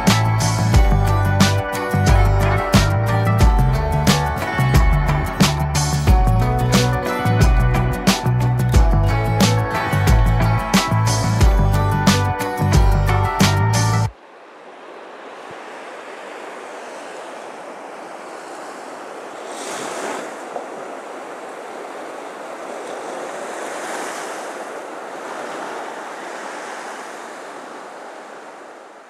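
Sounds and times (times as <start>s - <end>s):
ocean waves washing in: 0.0s - 29.0s.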